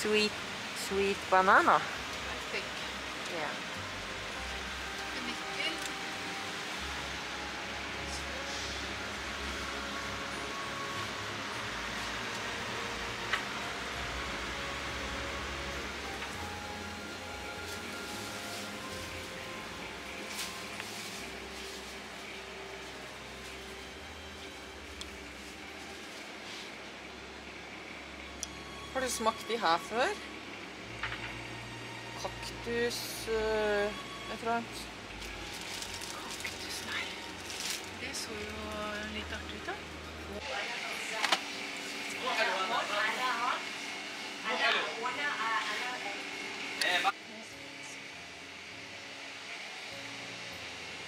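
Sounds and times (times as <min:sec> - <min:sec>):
steady background hiss: 0:00.0 - 0:51.0.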